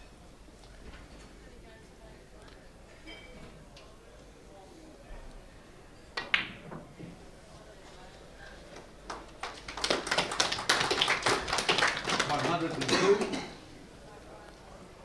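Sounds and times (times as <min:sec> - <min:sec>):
audience applauding: 0:09.1 - 0:13.4.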